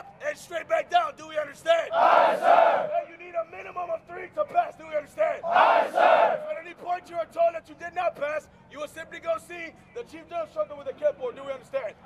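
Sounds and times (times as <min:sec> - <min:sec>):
group shouting in unison: 0:01.9 - 0:03.0, 0:05.4 - 0:06.4.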